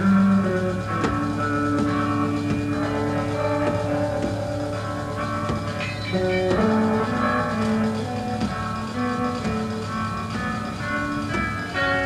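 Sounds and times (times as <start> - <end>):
slow instrumental melody with guitar: 0.0 - 12.0
steady low hum: 0.0 - 12.0.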